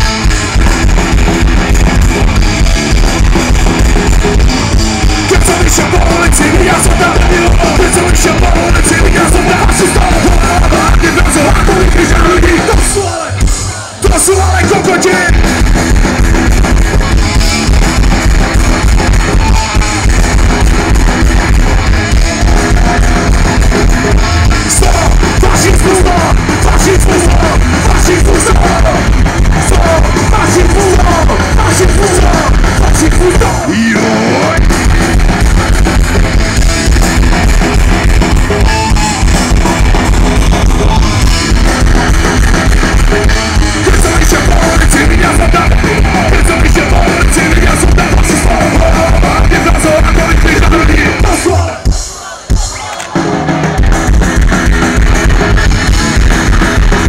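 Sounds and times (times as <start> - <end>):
drum kit beat: 0.0 - 57.0
electric guitars strumming: 0.0 - 57.0
punk rock band playing live: 0.0 - 57.0.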